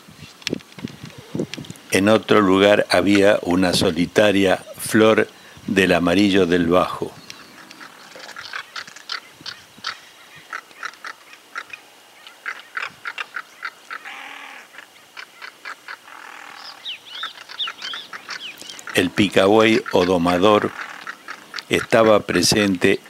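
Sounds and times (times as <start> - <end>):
birds chirping: 0.0 - 23.0.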